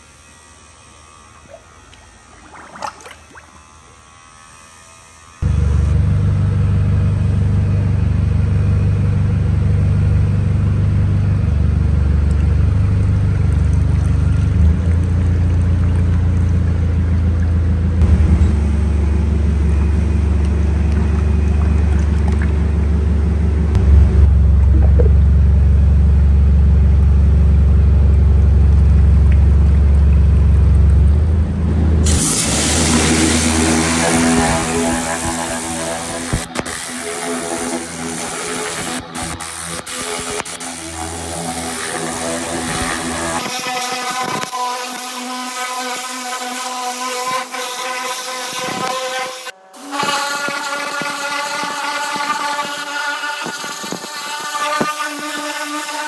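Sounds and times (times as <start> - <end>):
steady low hum: 0.0 - 43.9
pressure washer running tone: 0.0 - 56.0
pressure washer spraying metal: 32.0 - 56.0.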